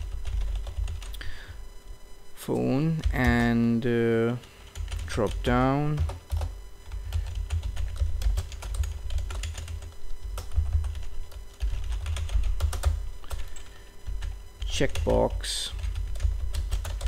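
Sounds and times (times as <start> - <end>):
computer keyboard typing: 0.0 - 1.2, 4.6 - 17.0.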